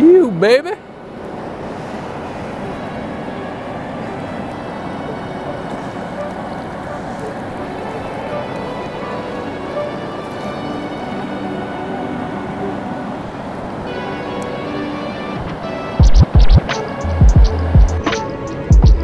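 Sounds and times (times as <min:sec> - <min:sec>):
fast-flowing river rushing: 0:00.0 - 0:18.8
faint background music: 0:02.7 - 0:19.0.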